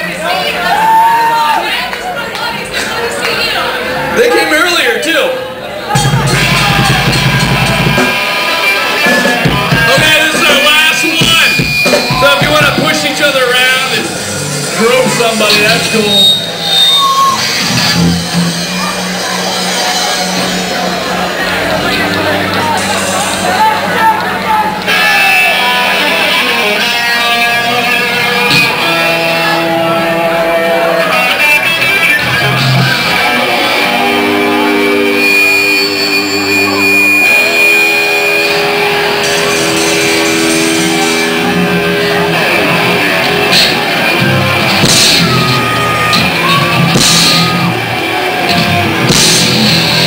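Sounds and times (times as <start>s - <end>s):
live band playing amplified music: 0.0s - 50.0s
electric guitars sustained chords: 17.6s - 50.0s.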